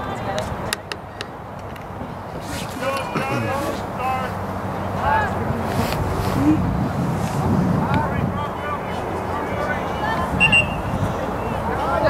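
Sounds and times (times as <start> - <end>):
distant voices calling: 8.0 - 12.0.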